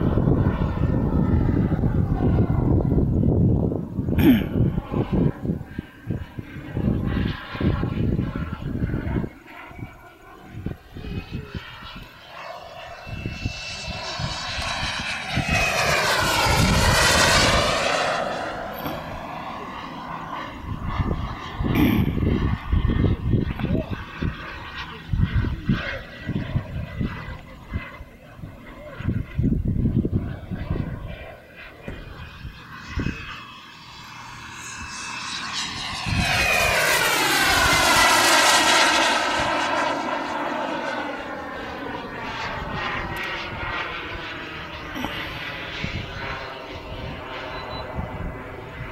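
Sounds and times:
low rumbling bursts: 0.0 - 11.8
model jet whine: 0.0 - 48.9.

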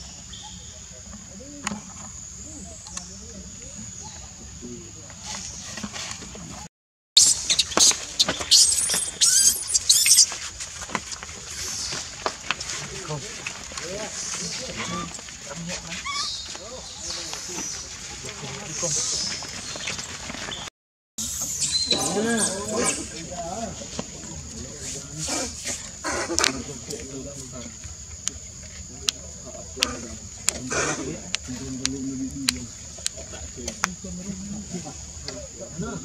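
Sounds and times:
baby monkey screaming: 7.2 - 10.3, 14.7 - 15.2, 15.9 - 16.5
macaques calling harshly: 7.2 - 10.4, 14.1 - 18.2, 21.6 - 23.2, 25.2 - 27.0, 29.8 - 31.8.

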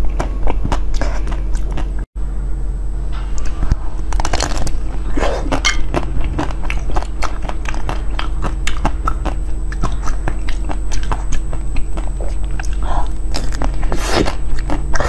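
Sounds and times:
biting and chewing food: 0.0 - 2.1, 3.4 - 15.0.

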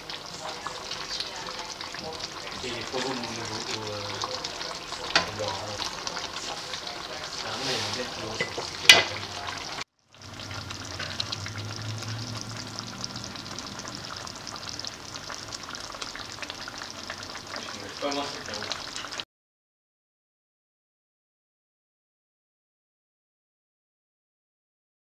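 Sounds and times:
stew sizzling in a pan: 0.0 - 19.2
wooden spatula scraping: 5.8 - 9.8.

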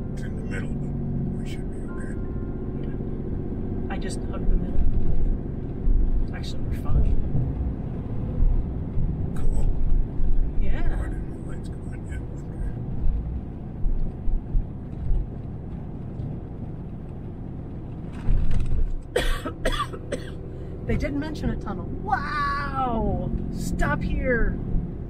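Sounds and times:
vehicle road and engine rumble: 0.0 - 25.0
person coughing hard: 19.2 - 20.4.

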